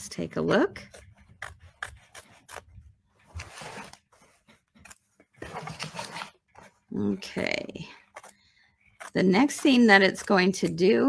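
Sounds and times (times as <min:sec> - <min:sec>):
scissors snipping fabric: 0:00.4 - 0:03.0, 0:07.9 - 0:11.0
fabric rustling: 0:02.0 - 0:07.6.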